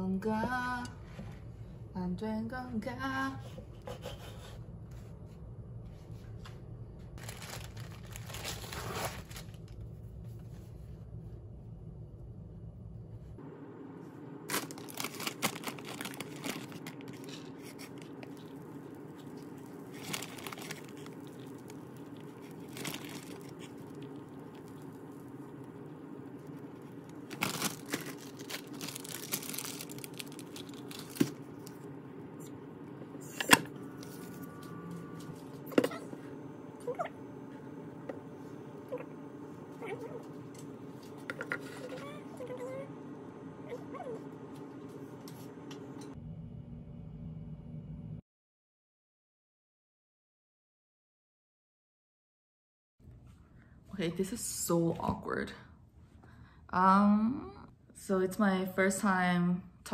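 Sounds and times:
steady low hum: 0.0 - 48.2
tortillas crinkling and rustling: 7.2 - 9.8, 14.5 - 25.0, 26.5 - 31.6.

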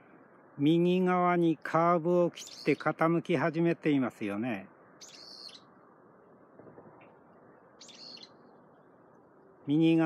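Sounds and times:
low background hiss: 0.0 - 10.0
bird chirping: 2.3 - 3.2, 4.7 - 5.9, 7.0 - 9.8.

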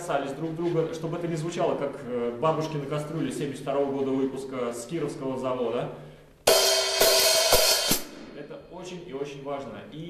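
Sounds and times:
hi-hat struck with drumstick: 6.5 - 8.6.

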